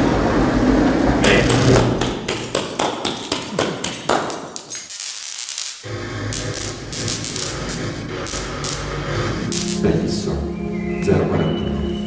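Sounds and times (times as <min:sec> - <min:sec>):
sharp electronic clicks and crackles: 0:04.7 - 0:09.9
low electronic texture: 0:05.8 - 0:12.0.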